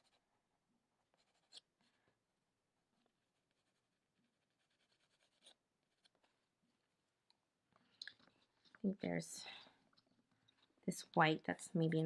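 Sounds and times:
colored pencil scratching on paper: 0:00.0 - 0:00.3, 0:01.0 - 0:02.0, 0:03.0 - 0:06.4.

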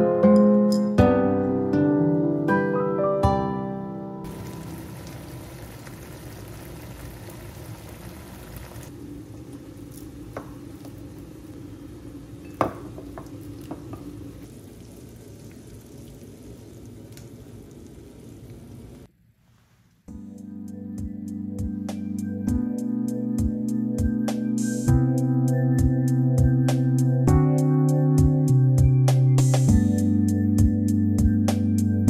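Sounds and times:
low sizzling hiss: 0:04.3 - 0:20.1.

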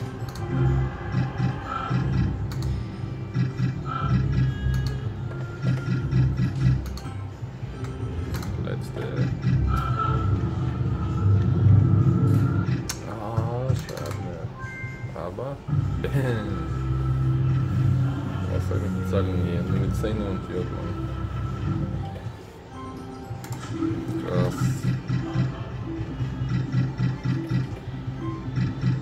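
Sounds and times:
slot machine electronic tones: 0:00.0 - 0:12.9, 0:19.4 - 0:29.0.

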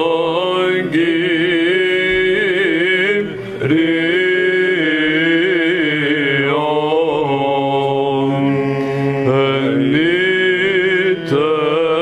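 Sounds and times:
low vocal drone: 0:00.0 - 0:12.0
man chanting melismatic line: 0:00.0 - 0:12.0.

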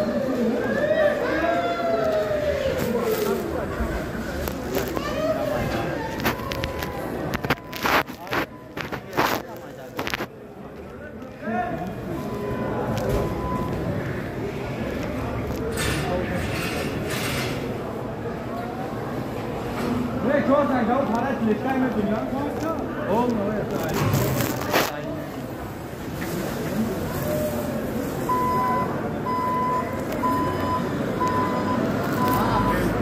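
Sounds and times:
steady background noise: 0:00.0 - 0:33.0.

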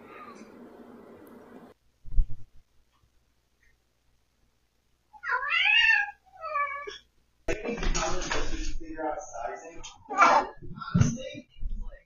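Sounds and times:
cat meowing: 0:05.2 - 0:07.0.

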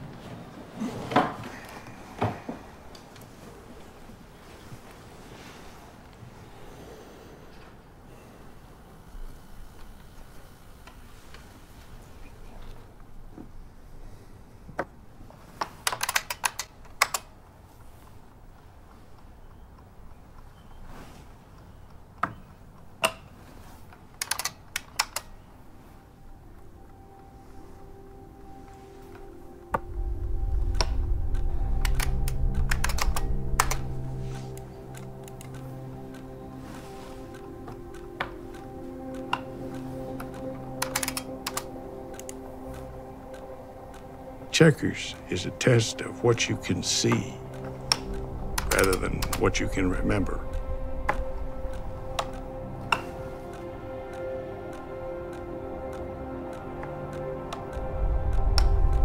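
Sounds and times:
low background hum: 0:00.0 - 0:59.0
film music with deep swell: 0:00.6 - 0:14.6, 0:24.3 - 0:59.0
mechanical keyboard typing: 0:15.9 - 0:17.2, 0:24.2 - 0:25.3, 0:40.8 - 0:42.3
game clock ticking: 0:29.2 - 0:59.0.

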